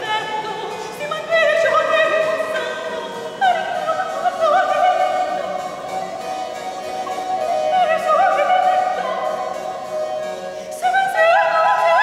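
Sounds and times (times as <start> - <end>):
harpsichord: 0.0 - 12.0
soprano singing: 0.0 - 12.0.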